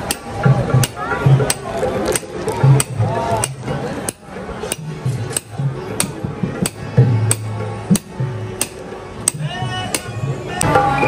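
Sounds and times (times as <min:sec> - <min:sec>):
dholak drum beat: 0:00.0 - 0:10.6.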